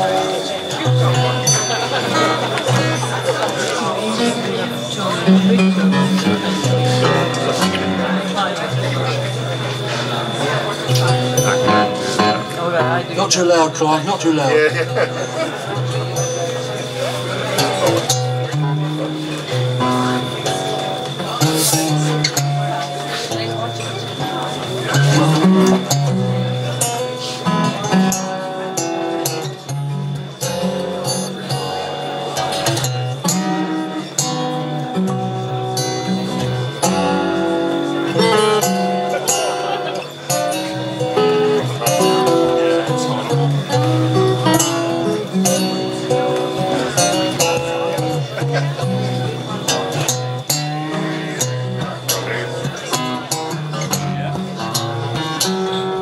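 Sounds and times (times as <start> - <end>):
acoustic guitars playing: 0.0 - 56.0.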